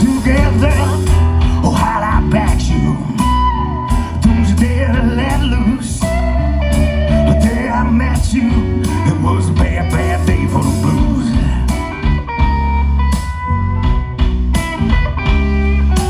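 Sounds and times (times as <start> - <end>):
bass line: 0.0 - 16.0
electric guitar: 0.0 - 16.0
live band playing: 0.0 - 16.0.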